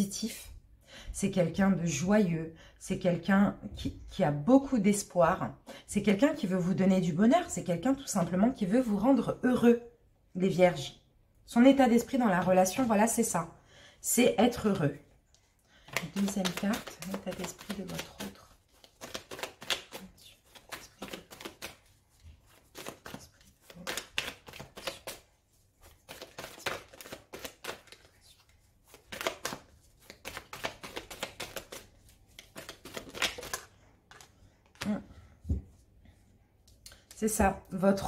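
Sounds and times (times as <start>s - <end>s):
cards being shuffled: 15.8s - 35.0s.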